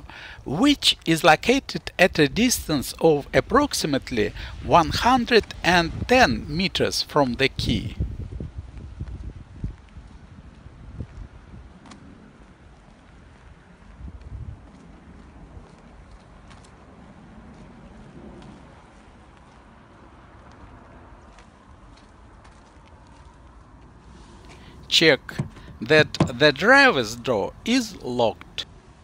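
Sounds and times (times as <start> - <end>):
wind rumble on microphone: 2.1 - 6.9, 7.5 - 21.4
footsteps on snowy road: 8.6 - 24.7.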